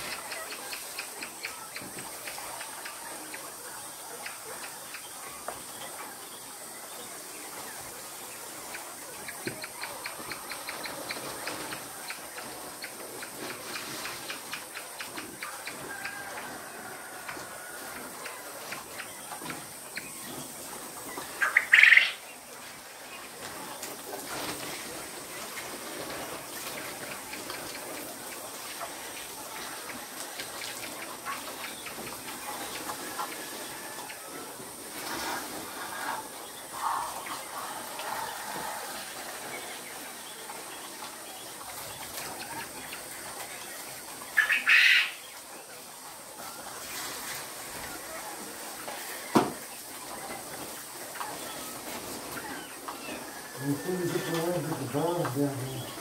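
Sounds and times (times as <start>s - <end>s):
faint chirping of birds: 0.0s - 56.0s
quail calling: 21.2s - 22.2s, 44.4s - 45.2s.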